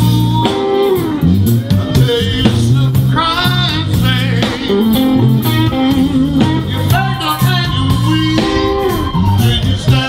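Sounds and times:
electric blues band playing: 0.0s - 10.0s
electric guitar bent notes: 0.0s - 10.0s.

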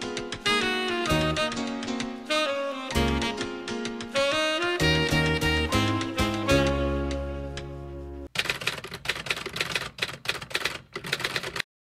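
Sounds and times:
rapid clatter of clicks: 8.4s - 11.7s.

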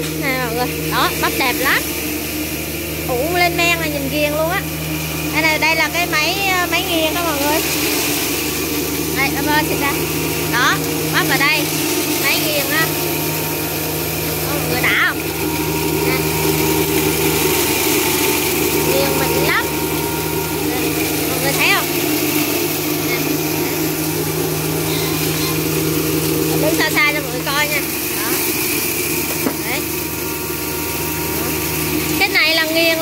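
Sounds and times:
grinding mill running: 0.0s - 33.0s
motor hum: 0.0s - 33.0s.

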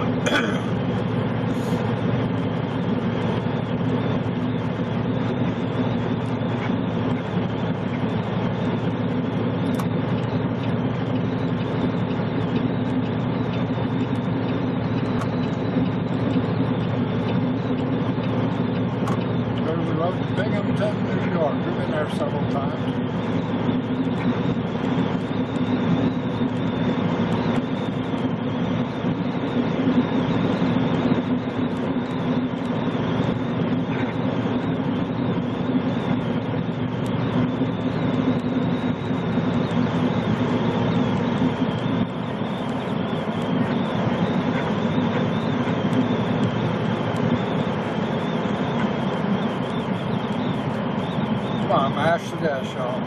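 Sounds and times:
truck engine and tyre drone: 0.0s - 53.0s.

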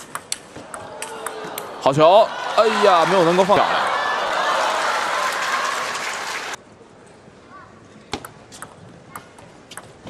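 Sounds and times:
audience applauding: 1.6s - 6.6s.

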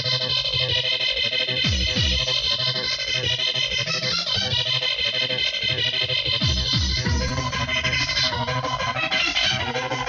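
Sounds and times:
hardcore electronic dance music: 0.0s - 10.0s.

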